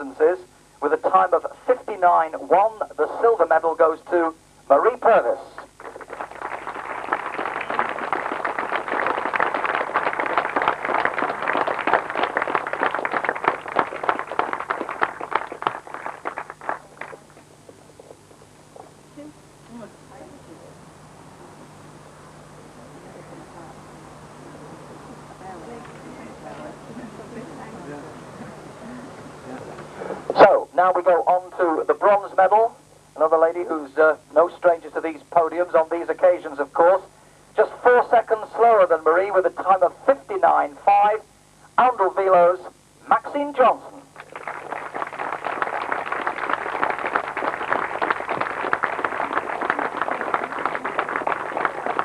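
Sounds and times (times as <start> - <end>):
announcer over public address: 0.0 - 5.6, 37.6 - 44.0
faint background noise: 0.0 - 52.0
crowd applauding: 5.6 - 17.8, 44.2 - 52.0.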